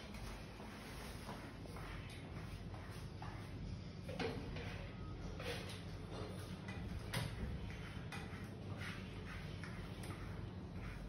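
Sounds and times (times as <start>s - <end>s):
steady low hum: 0.0s - 11.0s
spatula scraping paint on wall: 4.1s - 11.0s.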